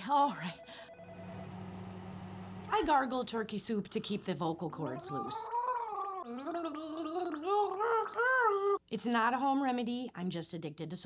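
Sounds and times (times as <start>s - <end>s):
woman gargling: 4.8s - 8.8s.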